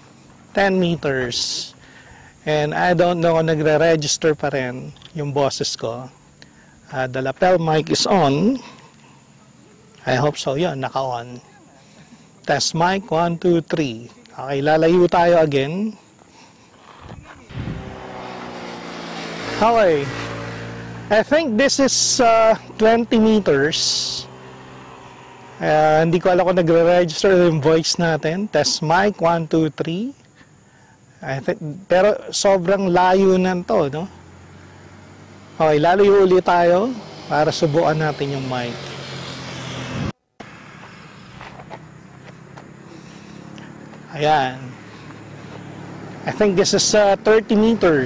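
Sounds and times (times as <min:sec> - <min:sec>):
distant traffic: 0:00.0 - 0:48.0
steady low hum: 0:00.0 - 0:48.0
vehicle engine running: 0:00.0 - 0:48.0.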